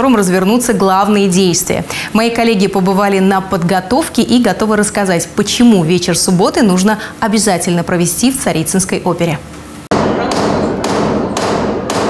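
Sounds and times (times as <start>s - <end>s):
hammer on wood echoing: 9.9s - 12.0s.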